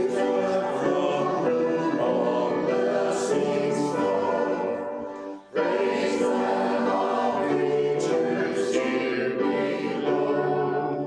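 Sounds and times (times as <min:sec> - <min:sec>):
church choir singing: 0:00.0 - 0:11.0
piano accompaniment: 0:00.0 - 0:11.0.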